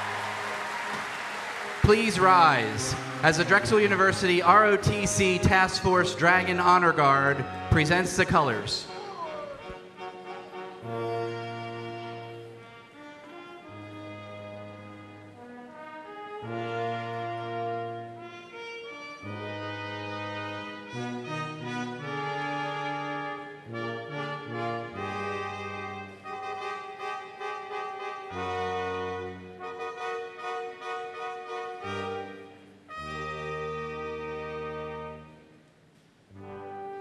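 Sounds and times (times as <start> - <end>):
brass ensemble playing chords: 0.0 - 35.6, 36.3 - 37.0.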